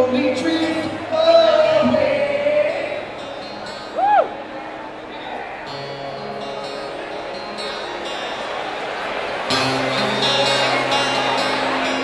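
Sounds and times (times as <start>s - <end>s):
acoustic guitar chords strummed: 0.0s - 12.0s.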